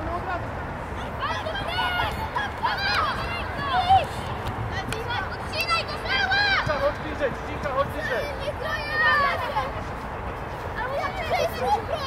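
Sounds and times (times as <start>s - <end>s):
young players shouting: 1.0s - 9.8s, 10.8s - 12.0s.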